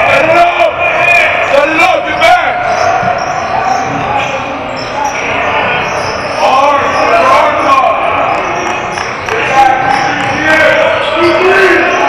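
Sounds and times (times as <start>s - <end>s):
voices echoing in gym: 0.0s - 12.0s.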